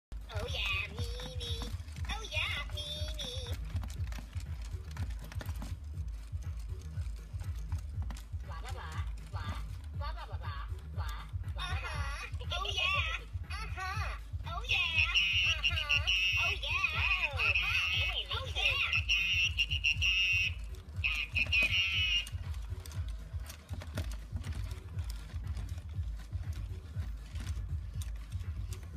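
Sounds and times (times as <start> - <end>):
toy motors clicking and clattering: 0.2 - 28.9
toys chirping electronically: 14.7 - 22.8.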